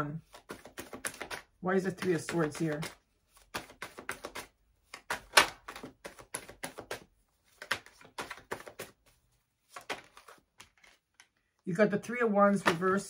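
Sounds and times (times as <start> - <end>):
cards being shuffled: 0.2 - 11.5, 12.5 - 13.0.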